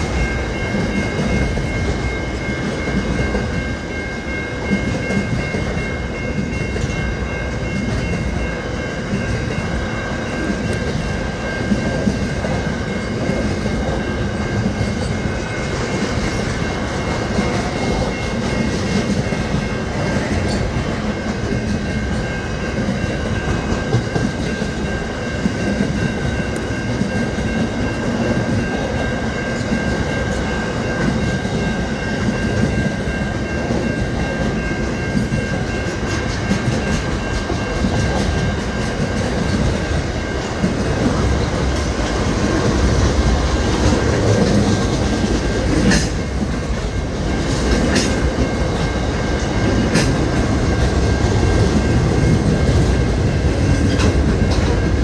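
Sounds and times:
high-pitched ring: 0.0 - 55.0
train wheels rumbling over rails: 0.0 - 55.0.

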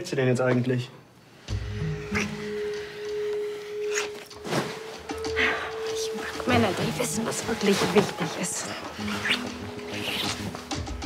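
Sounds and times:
sustained music tone: 1.5 - 11.0.

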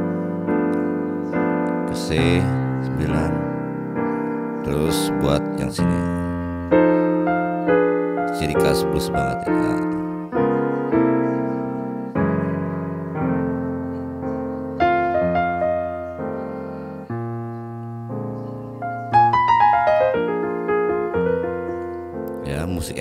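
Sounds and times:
slow blues piano: 0.0 - 23.0.

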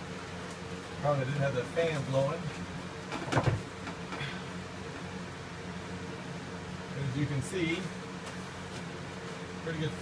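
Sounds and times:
electric fan humming: 0.0 - 10.0.

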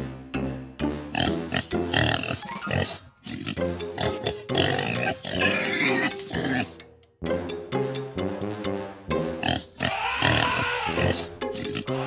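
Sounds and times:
background music: 0.0 - 12.0
pigs oinking: 1.1 - 6.8, 9.4 - 12.0.

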